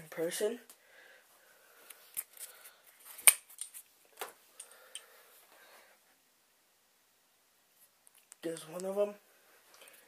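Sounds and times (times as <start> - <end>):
faint rustling of packaging: 0.0 - 6.2.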